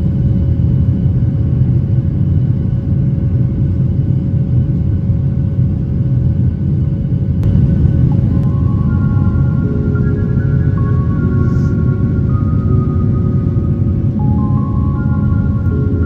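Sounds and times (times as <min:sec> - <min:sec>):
jet engines and rushing air rumble: 0:00.0 - 0:16.0
faint steady hum: 0:07.4 - 0:16.0.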